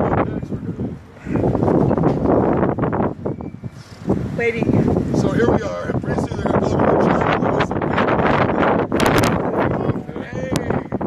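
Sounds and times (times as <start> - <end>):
wind blowing across microphone: 0.0 - 11.0.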